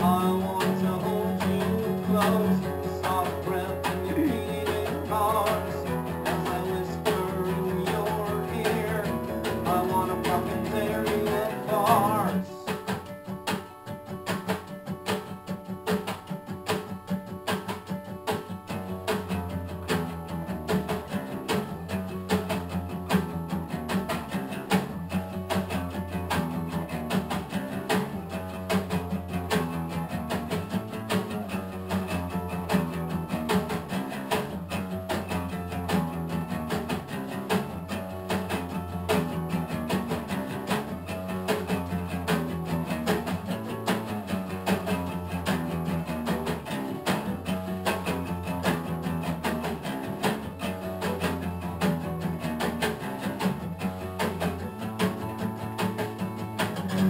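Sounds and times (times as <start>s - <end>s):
acoustic bass guitar line: 0.0s - 57.0s
acoustic guitar strumming: 0.0s - 57.0s.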